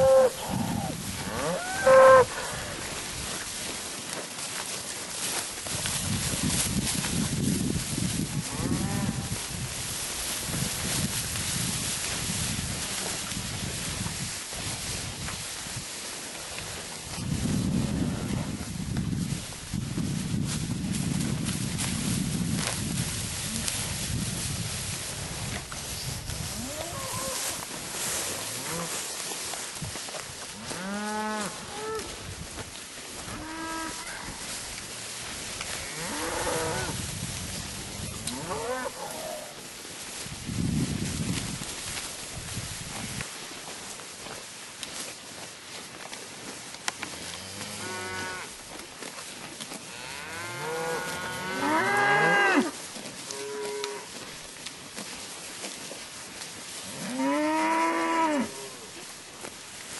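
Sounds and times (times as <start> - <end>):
cattle mooing: 0.0 - 2.5.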